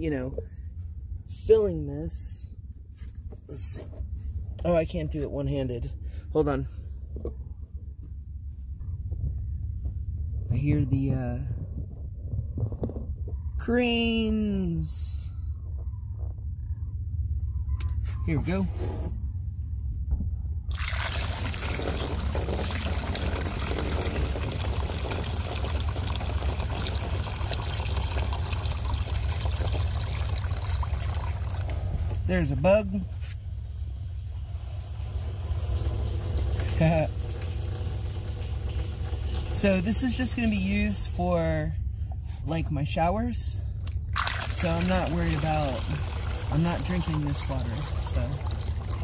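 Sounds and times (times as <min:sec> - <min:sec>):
water pouring into funnel: 0:20.7 - 0:32.5, 0:34.4 - 0:40.3, 0:44.2 - 0:49.0.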